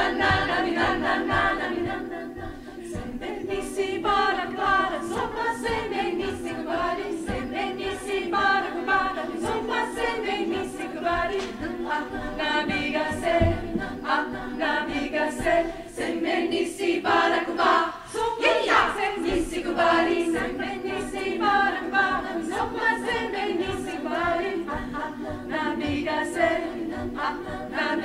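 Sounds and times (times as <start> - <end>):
women's choir singing a cappella: 0.0 - 28.0.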